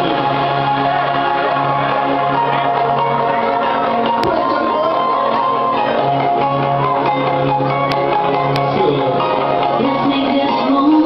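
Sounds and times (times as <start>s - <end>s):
held synth chords: 0.0s - 11.0s
person singing: 9.7s - 11.0s.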